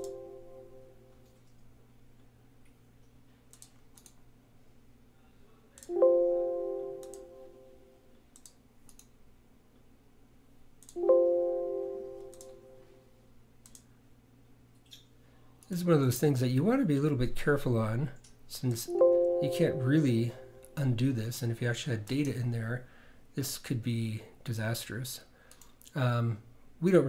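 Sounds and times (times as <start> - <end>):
faint mouse clicks: 2.6 - 4.2, 7.0 - 7.2, 8.4 - 9.2, 13.6 - 13.9, 25.5 - 26.0
computer alert chimes: 5.9 - 7.8, 11.0 - 12.8, 18.9 - 20.8.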